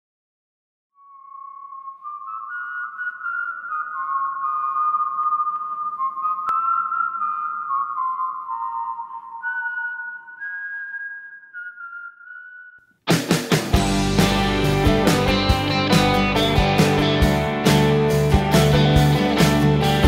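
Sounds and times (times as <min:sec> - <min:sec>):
whistled melody: 0:01.0 - 0:12.9, 0:13.8 - 0:20.0.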